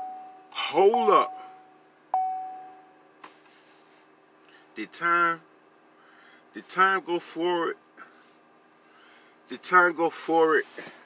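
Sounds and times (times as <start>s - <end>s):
car warning chime ding: 0.0s - 2.9s.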